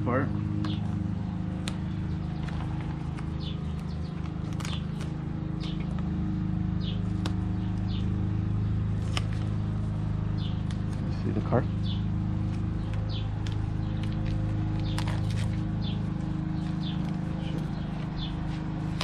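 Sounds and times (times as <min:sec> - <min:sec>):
low mechanical hum: 0:00.0 - 0:19.0
bird chirping: 0:00.5 - 0:01.0, 0:01.7 - 0:19.0.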